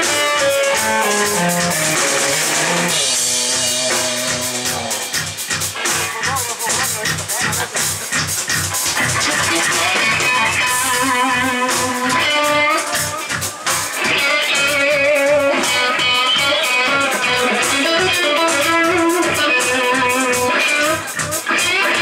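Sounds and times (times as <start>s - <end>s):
bass guitar: 0.0s - 22.0s
drums: 0.0s - 22.0s
electric guitar lead lines: 0.0s - 22.0s.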